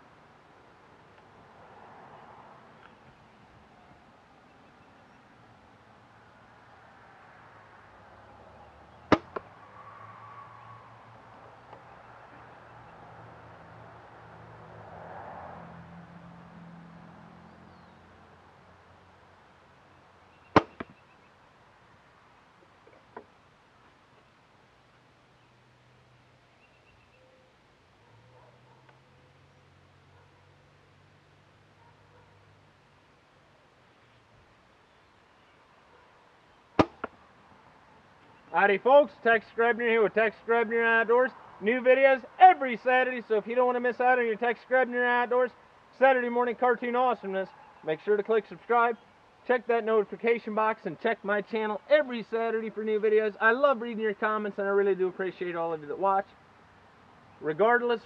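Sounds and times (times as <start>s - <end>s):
arrow striking target: 9.1s - 9.5s, 20.5s - 21.0s, 36.8s - 37.2s.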